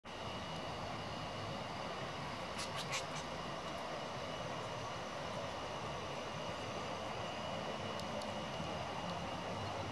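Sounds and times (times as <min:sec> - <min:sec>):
steady background noise: 0:00.1 - 0:09.9.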